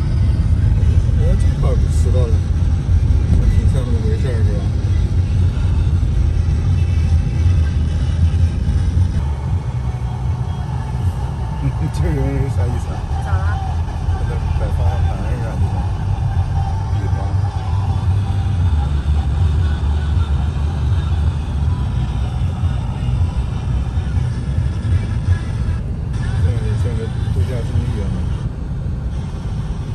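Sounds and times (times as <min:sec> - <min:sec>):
car engine and tyres rumbling: 0:00.0 - 0:29.9.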